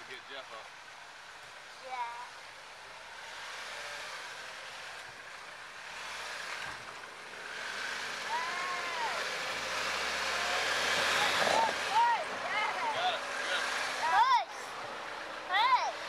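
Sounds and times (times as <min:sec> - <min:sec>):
off-road vehicle engine crawling: 0:00.0 - 0:16.0.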